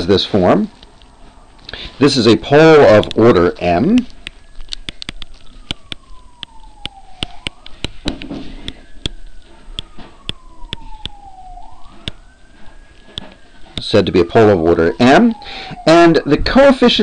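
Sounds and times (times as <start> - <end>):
emergency siren wailing: 0.0 - 17.0
stylus tapping on pen tablet: 4.2 - 9.2.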